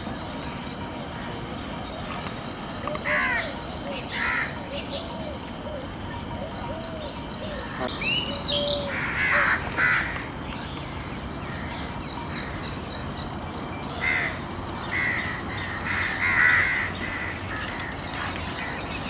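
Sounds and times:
steady background hiss: 0:00.0 - 0:19.0
harsh bird calls: 0:02.1 - 0:13.1, 0:13.8 - 0:19.0.

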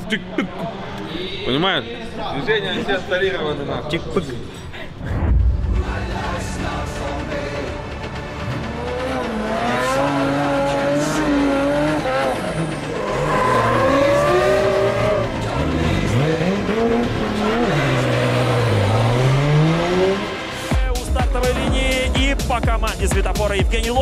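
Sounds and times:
car engines revving: 0:00.0 - 0:01.3, 0:05.8 - 0:20.7
tyres squealing: 0:12.8 - 0:15.4.

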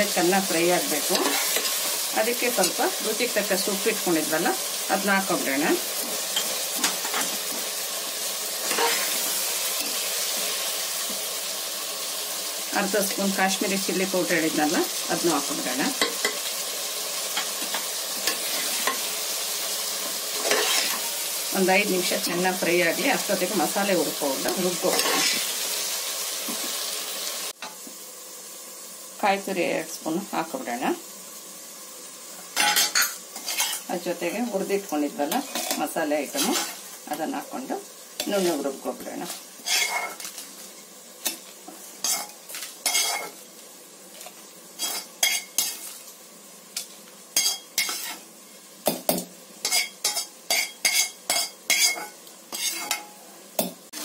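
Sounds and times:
faint steady hiss: 0:00.0 - 0:54.0
vegetables sizzling in a pot: 0:00.0 - 0:54.0
spatula stirring: 0:39.2 - 0:40.6, 0:42.0 - 0:43.4, 0:44.2 - 0:46.0, 0:46.8 - 0:48.2, 0:49.6 - 0:53.1
metal spatula scraping a steel jar: 0:39.7 - 0:40.2, 0:49.7 - 0:53.1.

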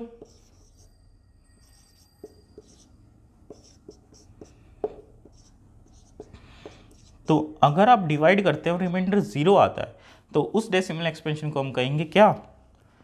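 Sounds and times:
marker writing on whiteboard: 0:00.0 - 0:01.0, 0:01.6 - 0:07.6.

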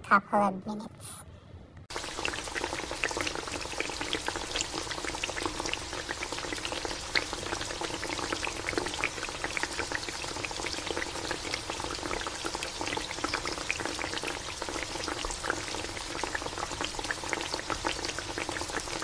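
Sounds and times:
broth bubbling in a pot: 0:01.9 - 0:19.0.

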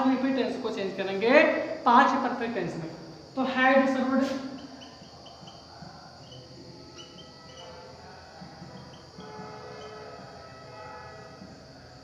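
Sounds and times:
marker squeaking on whiteboard: 0:04.2 - 0:07.9.

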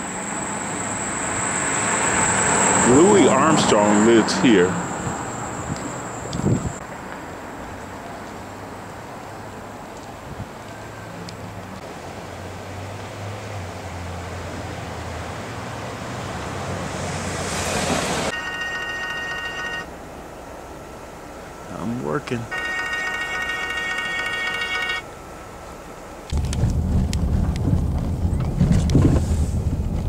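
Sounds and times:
steady high tone: 0:00.0 - 0:06.8, 0:18.3 - 0:26.2
rushing noise: 0:00.0 - 0:06.9
car road and engine noise: 0:00.0 - 0:30.0.

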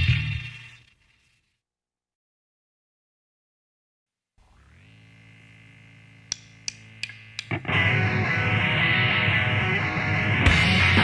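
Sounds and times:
sharp count-in clicks: 0:06.3 - 0:07.6
distorted rock band playing: 0:06.5 - 0:11.0.

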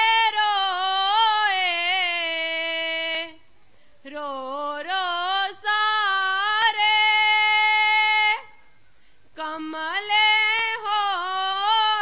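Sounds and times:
woman singing: 0:00.0 - 0:08.7, 0:09.4 - 0:12.0.

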